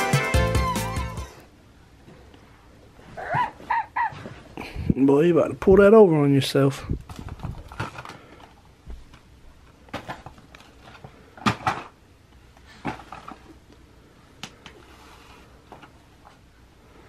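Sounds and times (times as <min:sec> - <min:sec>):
plastic blocks clicking and knocking: 0:07.1 - 0:08.6.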